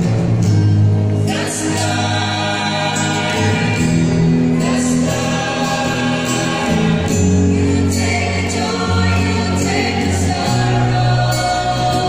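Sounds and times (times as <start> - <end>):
group singing a slow hymn: 1.2 - 12.0.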